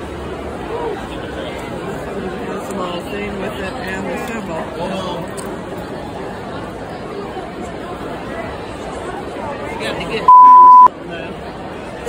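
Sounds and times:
crowd chatter in a hall: 0.0 - 12.0
single-tone censor beep: 10.3 - 10.9.

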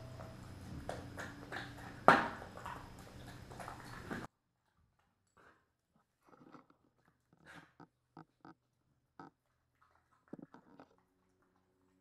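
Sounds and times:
dog eating from metal bowl: 0.0 - 4.3, 9.2 - 12.0.

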